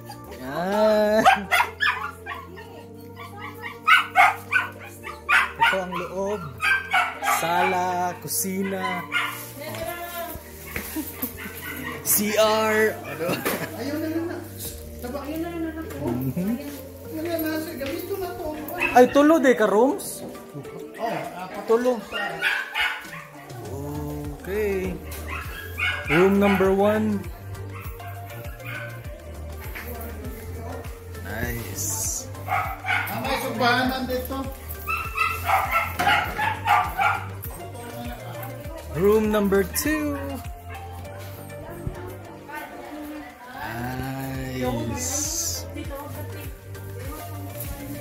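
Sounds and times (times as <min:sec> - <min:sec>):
small dog barking: 0:01.2 - 0:09.8, 0:10.6 - 0:13.2, 0:18.5 - 0:19.3, 0:22.0 - 0:23.7, 0:25.0 - 0:29.0, 0:32.4 - 0:33.5, 0:34.8 - 0:37.6.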